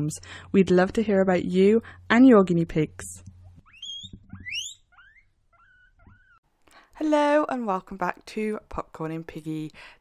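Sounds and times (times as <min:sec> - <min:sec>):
guinea pigs squealing: 0:03.6 - 0:06.4.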